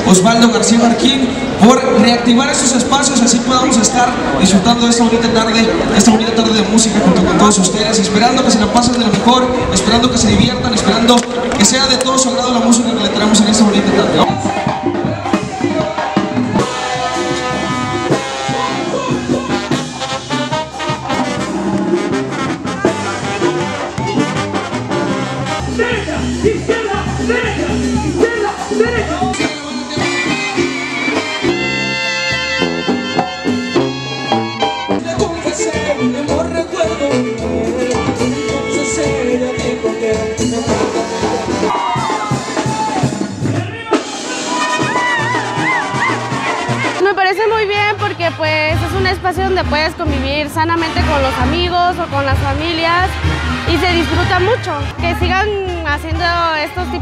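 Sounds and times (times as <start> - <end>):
brass band playing: 0.0 - 57.0
drums keeping a beat: 0.0 - 57.0.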